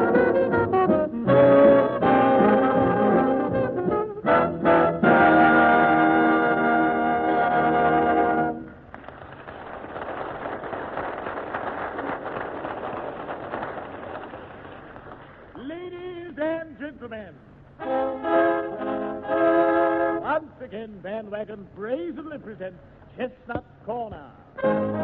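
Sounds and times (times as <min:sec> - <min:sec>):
dance band with brass: 0:00.0 - 0:08.7, 0:17.8 - 0:20.3.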